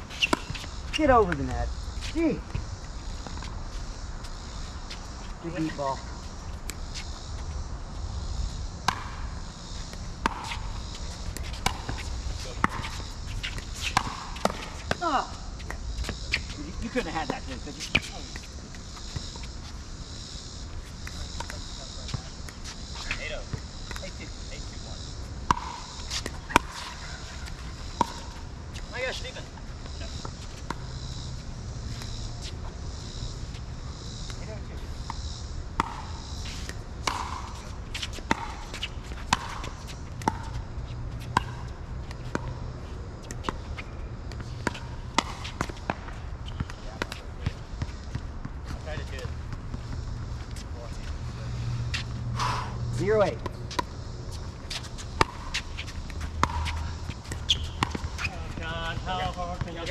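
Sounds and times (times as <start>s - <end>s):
ball bouncing on court: 0.2s - 1.5s, 8.8s - 16.5s, 25.4s - 28.8s, 29.8s - 31.2s, 35.0s - 40.6s, 41.2s - 42.6s, 43.2s - 50.3s, 54.7s - 59.9s.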